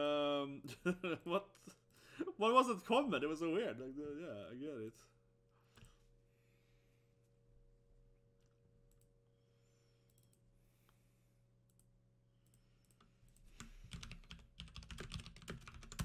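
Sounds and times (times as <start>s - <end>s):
faint electrical hum: 0.0s - 16.0s.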